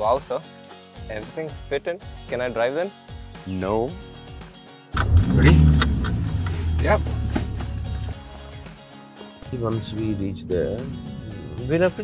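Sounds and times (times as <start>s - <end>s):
car engine starting and idling: 5.0s - 8.3s.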